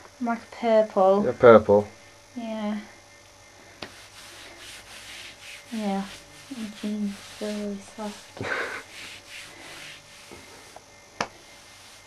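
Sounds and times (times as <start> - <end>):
hands rubbing over fabric: 3.8 - 12.0.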